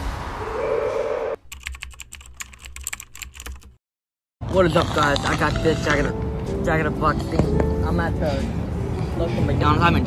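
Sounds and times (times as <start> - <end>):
computer keyboard typing: 1.5 - 3.8.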